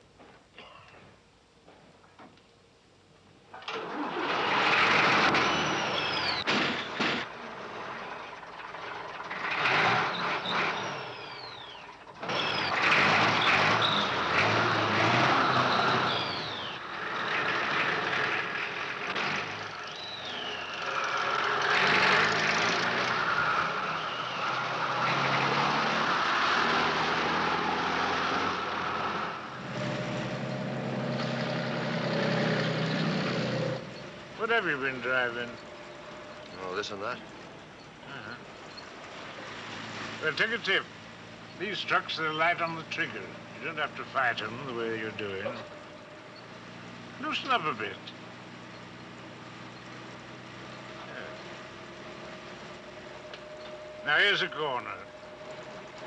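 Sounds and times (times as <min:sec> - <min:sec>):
lorry engine running hard: 0:03.6 - 0:56.0
high falling squeals: 0:03.7 - 0:27.4, 0:50.7 - 0:56.0.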